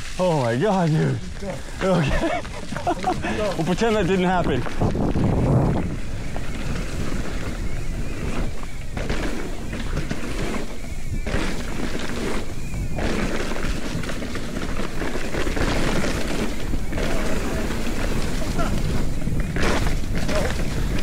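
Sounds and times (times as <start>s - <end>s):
bike tyres rumbling over ground: 0.0s - 21.0s
wind on microphone: 1.1s - 21.0s.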